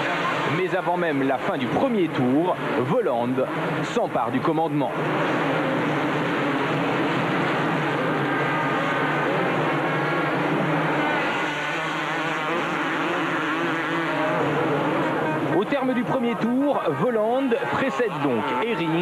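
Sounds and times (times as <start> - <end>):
motocross bike engines revving: 0.0 - 19.0.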